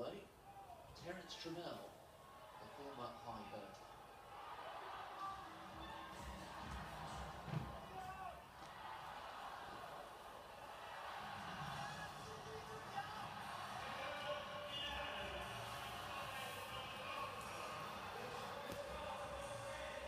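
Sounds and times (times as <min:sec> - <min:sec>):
crowd murmur on television: 0:00.0 - 0:20.0.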